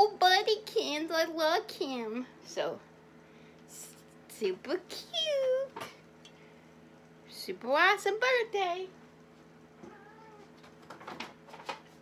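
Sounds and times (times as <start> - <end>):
cat meowing softly: 9.8 - 10.6.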